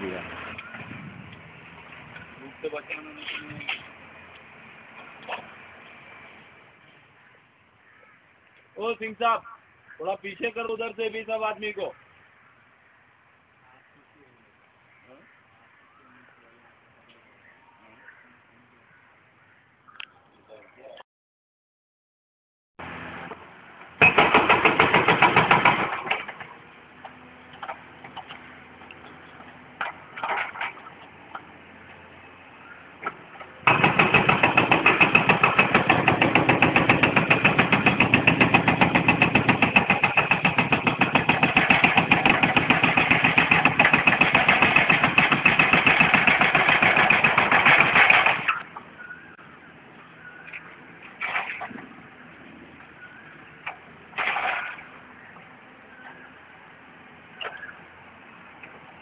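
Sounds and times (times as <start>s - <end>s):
hydraulic breaker hammering: 24.0s - 26.4s, 33.6s - 48.6s.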